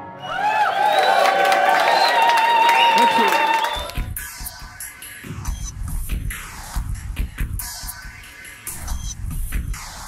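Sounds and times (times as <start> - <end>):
audience applauding and cheering: 0.0 - 4.2
voices calling out: 2.4 - 3.9.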